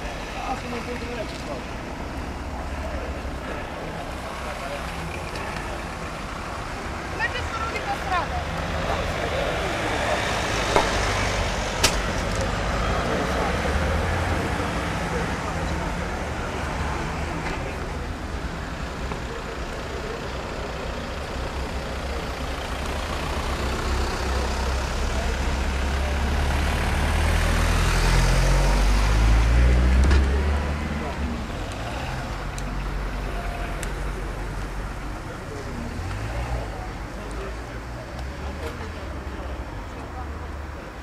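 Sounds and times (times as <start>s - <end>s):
voices murmuring: 0.0s - 41.0s.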